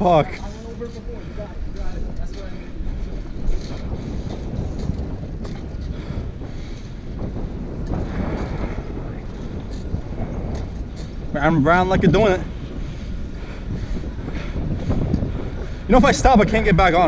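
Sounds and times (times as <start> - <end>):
bike rolling on asphalt: 0.0 - 17.0
wind noise on microphone: 0.0 - 17.0.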